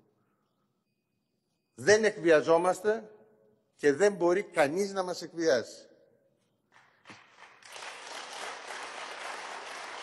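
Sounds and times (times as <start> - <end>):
many hands clapping: 6.7 - 10.0.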